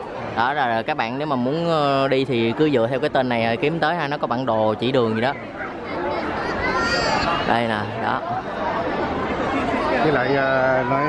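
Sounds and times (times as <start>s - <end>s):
chatter of people talking: 0.0s - 11.0s.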